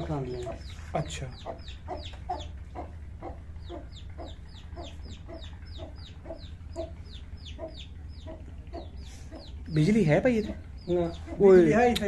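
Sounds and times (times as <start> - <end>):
chicken clucking: 0.0 - 11.9.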